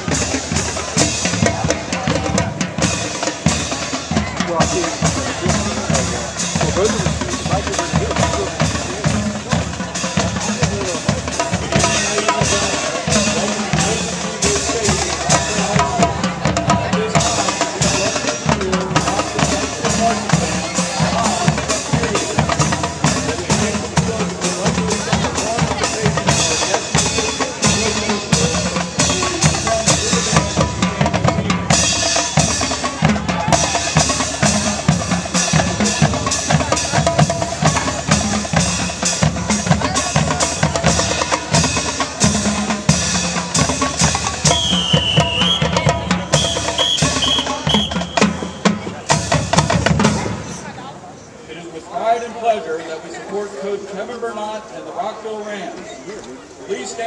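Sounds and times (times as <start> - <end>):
snare and bass drumming: 0.0 - 50.8
marching band playing: 0.0 - 51.4.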